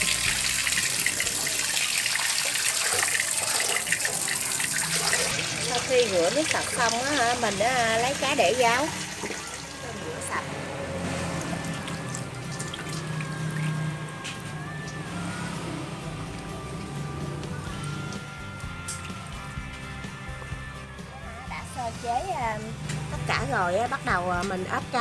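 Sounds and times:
water trickling and splashing: 0:00.0 - 0:19.9
background music: 0:00.0 - 0:25.0.

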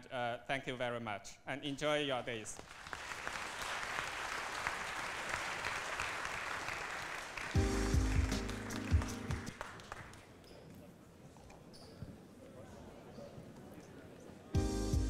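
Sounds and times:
audience applauding: 0:02.6 - 0:10.4.

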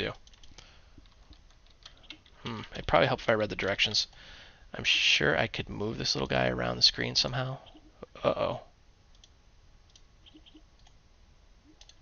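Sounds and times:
computer mouse clicks: 0:00.2 - 0:02.4, 0:09.1 - 0:11.0, 0:11.7 - 0:12.0.

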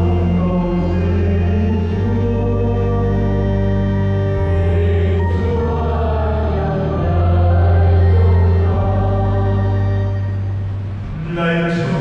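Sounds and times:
choir singing a hymn: 0:00.0 - 0:12.0
sustained organ bass: 0:00.0 - 0:12.0.

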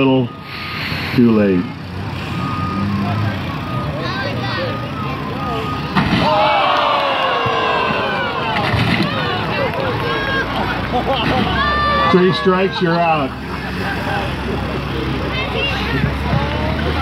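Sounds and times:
excavator running: 0:00.0 - 0:17.0.

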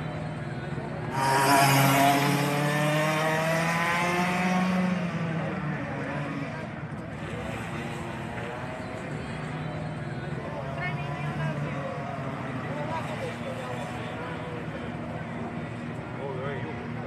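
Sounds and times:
kart engine passing by: 0:01.0 - 0:08.7.

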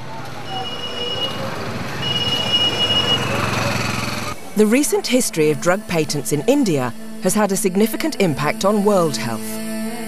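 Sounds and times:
distant voices: 0:00.0 - 0:04.4
engines: 0:00.0 - 0:05.0.

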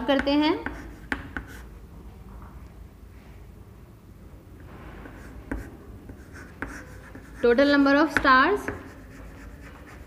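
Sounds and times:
chalk tapping against board: 0:00.1 - 0:01.7, 0:05.5 - 0:10.0
chalk scratching on blackboard: 0:00.6 - 0:01.7, 0:05.2 - 0:10.0.

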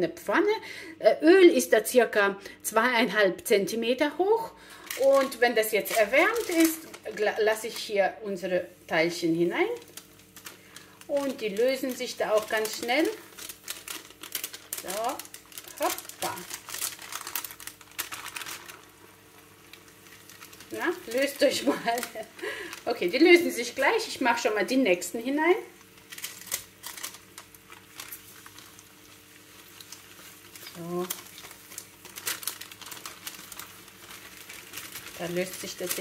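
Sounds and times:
baking paper crinkling: 0:04.7 - 0:36.0
dough frying in oil: 0:05.0 - 0:36.0.

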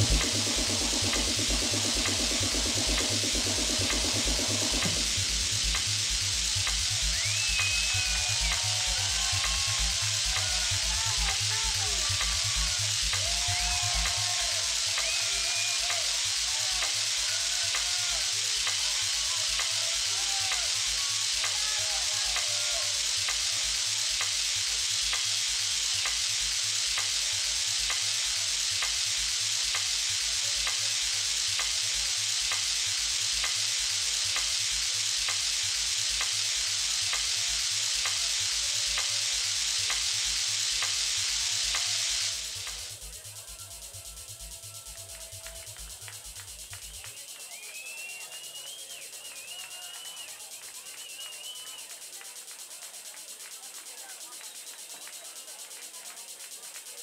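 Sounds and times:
techno kick drum over pa: 0:00.0 - 0:22.6
heavy hiss: 0:00.0 - 0:57.0.

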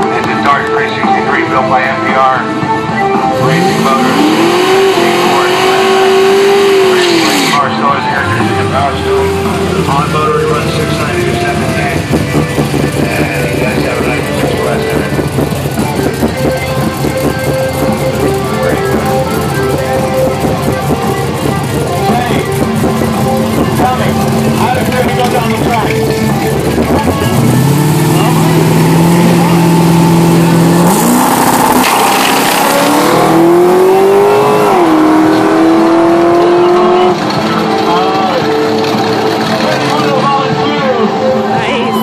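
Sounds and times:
people talking: 0:00.0 - 0:02.5, 0:03.4 - 0:17.5, 0:18.1 - 0:29.8, 0:36.3 - 0:42.0
music: 0:00.0 - 0:30.8, 0:32.8 - 0:42.0
engine revving: 0:03.2 - 0:40.6.

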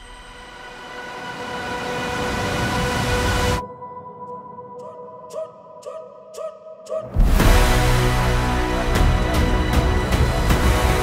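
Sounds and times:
swelling rush of noise: 0:00.0 - 0:04.2
held drone chord: 0:07.4 - 0:11.0.

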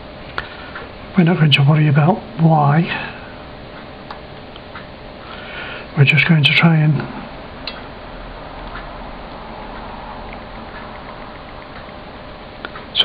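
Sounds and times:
steady low hiss: 0:00.0 - 0:13.0.

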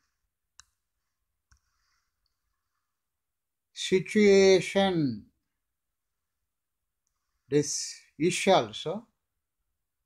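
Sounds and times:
faint clicks: 0:01.4 - 0:02.6.

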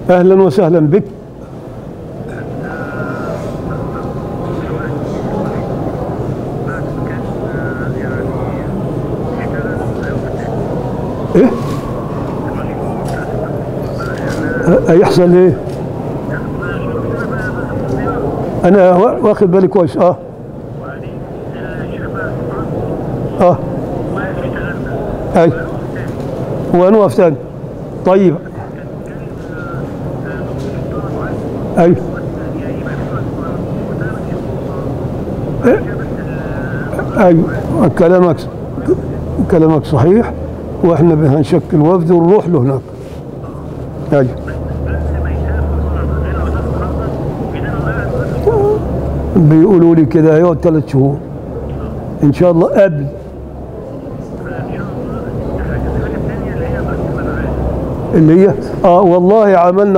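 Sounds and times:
man talking on phone: 0:00.0 - 0:01.2, 0:02.2 - 0:53.4, 0:54.3 - 0:59.9
faint distant voices: 0:00.0 - 0:59.9
steady background noise: 0:00.0 - 0:59.9.

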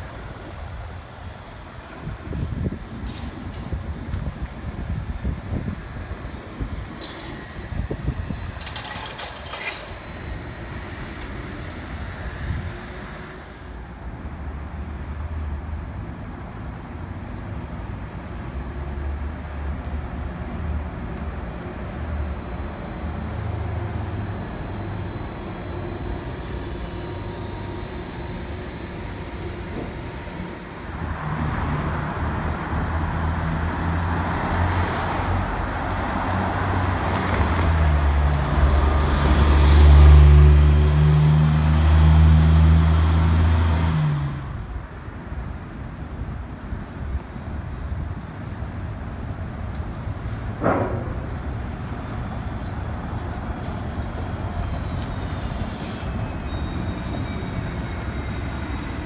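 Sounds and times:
heavy vehicle engine running low: 0:00.0 - 0:59.0
road traffic passing: 0:00.0 - 0:59.0.

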